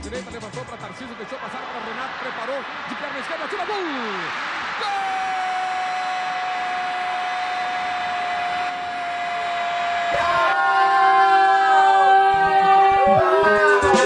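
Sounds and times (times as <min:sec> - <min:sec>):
commentator goal cry: 0:10.1 - 0:14.0.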